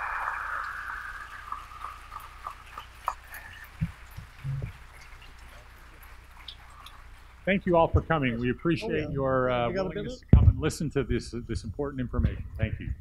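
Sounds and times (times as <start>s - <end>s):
audience applause: 0.0s - 8.4s
low thumps: 10.3s - 13.0s.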